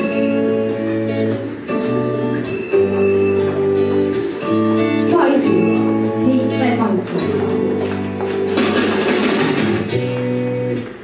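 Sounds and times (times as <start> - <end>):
electric guitar held notes: 0.0 - 11.0
live band instrumental: 0.0 - 11.0.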